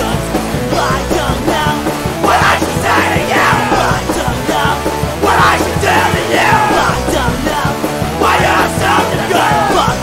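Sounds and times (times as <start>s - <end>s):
punk rock song: 0.0s - 10.0s
shouted vocal: 0.8s - 10.0s.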